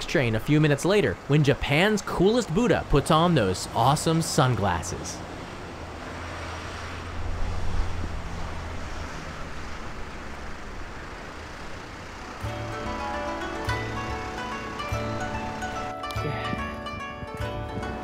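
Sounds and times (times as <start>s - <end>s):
cars rumbling over level crossing: 0.0s - 18.0s
background music: 12.3s - 18.0s.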